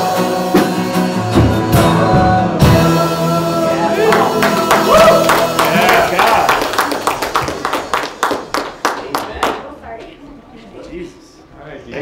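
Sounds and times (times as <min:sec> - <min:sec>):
hands clapping: 0:04.1 - 0:09.7.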